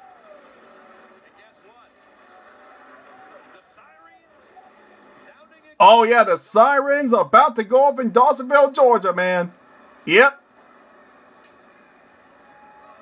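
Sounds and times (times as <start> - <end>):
commentator voices on television: 5.8 - 9.5, 10.1 - 10.4
man exclaiming: 5.8 - 9.5, 10.1 - 10.3.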